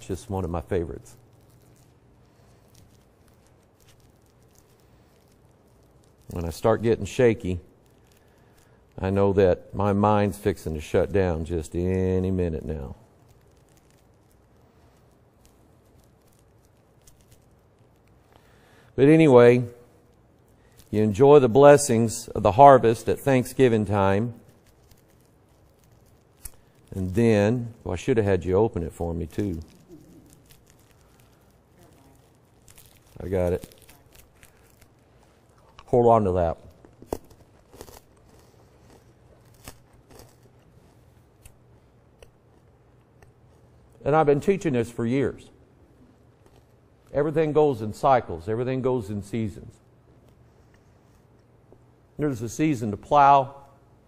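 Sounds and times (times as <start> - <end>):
candy wrapper crinkling: 0.0 - 45.0, 45.6 - 48.1, 49.3 - 52.2
quiet room hum: 0.0 - 54.0.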